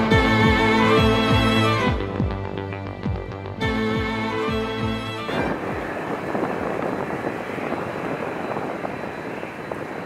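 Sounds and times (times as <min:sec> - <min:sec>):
jet engines running: 0:00.0 - 0:10.0.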